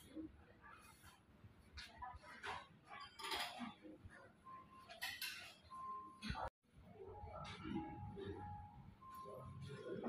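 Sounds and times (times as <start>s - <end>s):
clinks of tableware and glass: 2.4s - 3.9s, 4.8s - 6.4s.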